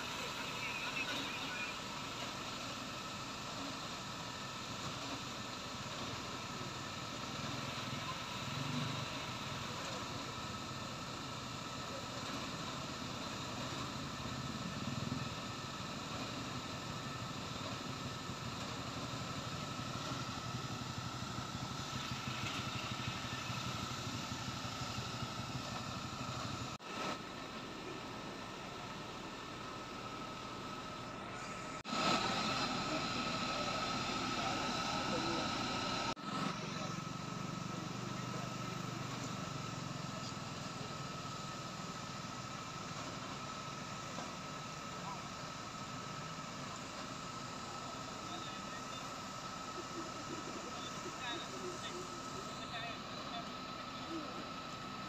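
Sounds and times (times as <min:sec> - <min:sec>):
fire engine pump running: 0:00.0 - 0:55.0.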